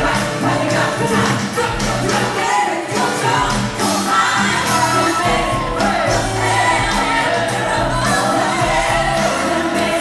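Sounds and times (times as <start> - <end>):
band with steady bass line: 0.0 - 10.0
singers performing pop song: 0.0 - 10.0.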